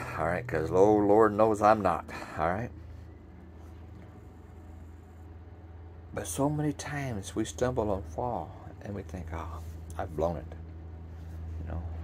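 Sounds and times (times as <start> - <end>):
low hum: 0.0 - 12.0.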